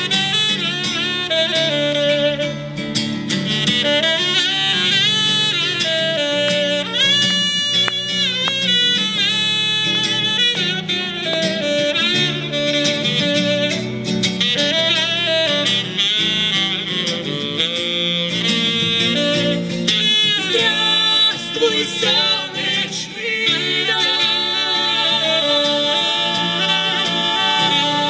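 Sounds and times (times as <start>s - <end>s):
saxophone solo: 0.0s - 28.0s
strummed acoustic guitar: 0.0s - 28.0s.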